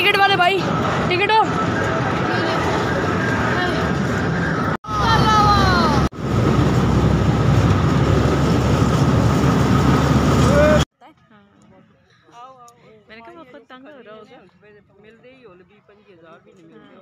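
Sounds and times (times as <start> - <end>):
train ride rumbling on rails: 0.0 - 10.9.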